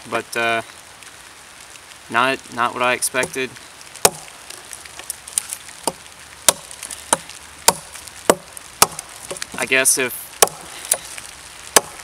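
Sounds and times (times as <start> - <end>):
machete chopping into log: 4.0 - 4.2, 5.9 - 9.6, 10.4 - 11.1, 11.8 - 12.0.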